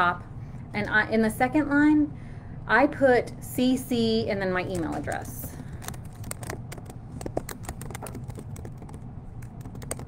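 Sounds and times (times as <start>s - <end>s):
keyboard key clicks: 5.8s - 10.0s.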